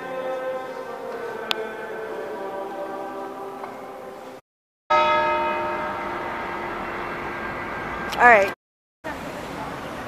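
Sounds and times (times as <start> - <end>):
church bell ringing: 4.9 - 8.5.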